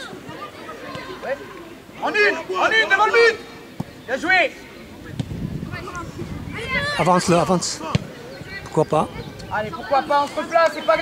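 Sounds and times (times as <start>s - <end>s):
distant chatter of people: 0.0s - 11.0s.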